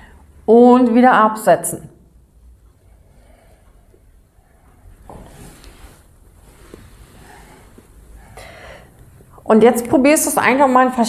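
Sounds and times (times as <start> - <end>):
woman breathing with strain: 0.0 - 0.3, 2.9 - 6.0, 6.6 - 9.4.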